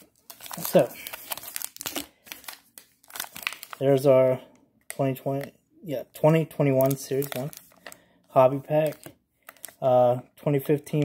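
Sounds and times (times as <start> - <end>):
foil wrapper crinkling: 0.0 - 4.0, 6.7 - 8.0, 8.8 - 9.8.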